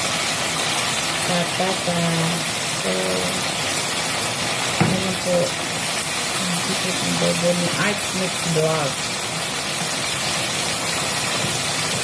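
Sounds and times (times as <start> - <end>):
food sizzling in a frying pan: 0.0 - 12.0.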